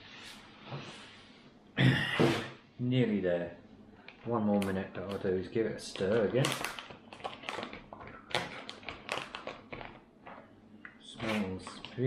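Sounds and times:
foil pouch crinkling: 5.9s - 10.4s.

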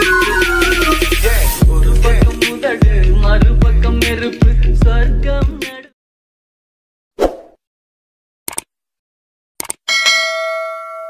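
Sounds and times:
sharp mouse clicks: 8.5s - 8.7s, 9.6s - 9.8s
bell ding: 9.9s - 11.0s.

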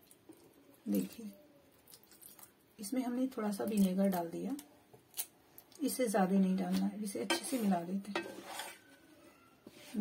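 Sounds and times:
spatula stirring vegetables in oil: 6.7s - 9.0s
spatula scraping pan: 7.2s - 9.0s.

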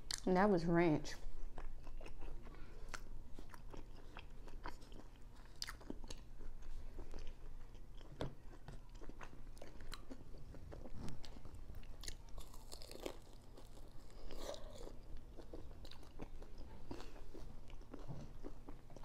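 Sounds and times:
chewing and crunching: 1.1s - 19.0s.

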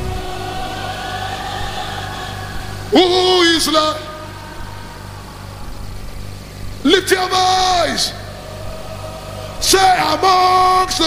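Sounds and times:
faint hall ambience hiss: 0.0s - 11.0s.

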